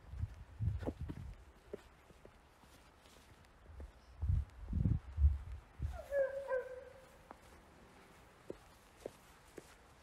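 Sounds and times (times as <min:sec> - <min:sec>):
dog barking: 0:06.1 - 0:07.0.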